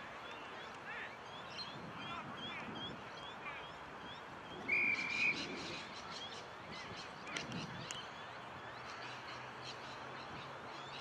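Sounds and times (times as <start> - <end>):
small birds chirping: 0.1 - 11.0
high whistle: 4.7 - 5.4.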